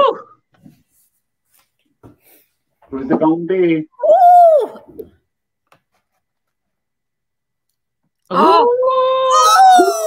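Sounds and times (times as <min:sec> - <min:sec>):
person shouting: 0:08.3 - 0:10.0.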